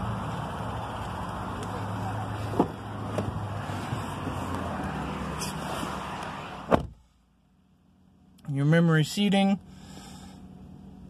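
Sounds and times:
outdoor rumble: 0.0 - 8.2
car door slamming: 2.4 - 4.4, 6.6 - 7.0.

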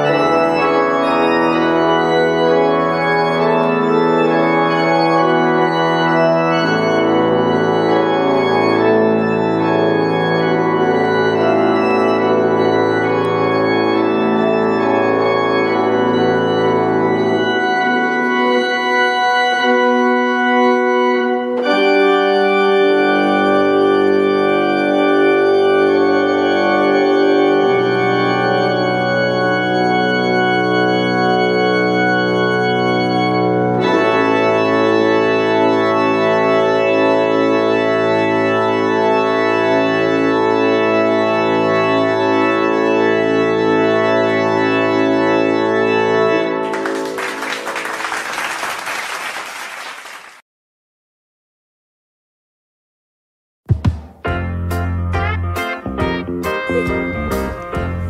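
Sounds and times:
church organ chords: 0.0 - 48.8, 54.3 - 58.0.

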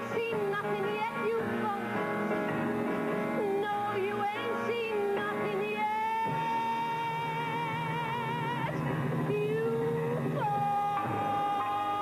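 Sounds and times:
woman singing with vibrato: 0.0 - 2.4, 3.2 - 12.0
instrumental accompaniment: 0.0 - 12.0.

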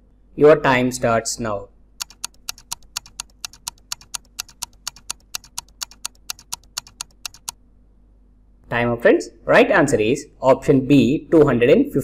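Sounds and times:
countdown timer ticking: 2.0 - 7.6.

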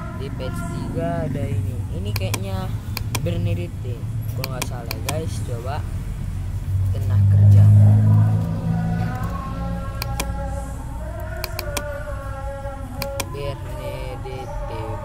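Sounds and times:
computer mouse clicks: 2.1 - 3.4, 4.4 - 5.3, 9.1 - 10.4, 11.2 - 12.0, 13.0 - 13.4
loud low rumble: 5.3 - 15.0.

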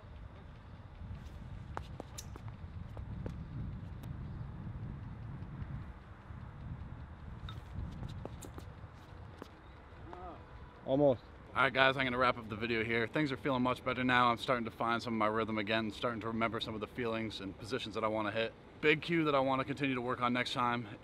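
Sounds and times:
low steady rumble: 0.0 - 20.4
shoes scuffing on concrete: 1.2 - 3.4, 7.5 - 9.6.

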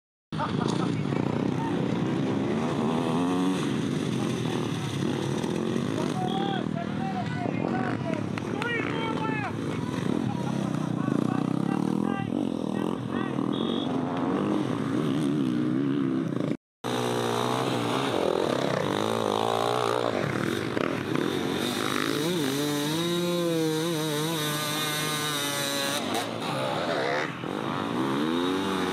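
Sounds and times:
dirt bike engines revving: 0.4 - 28.9.

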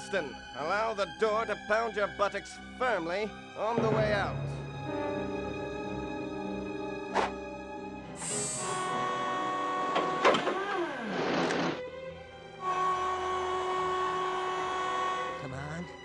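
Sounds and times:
cartoon music with held notes: 3.6 - 10.4, 12.3 - 16.0.

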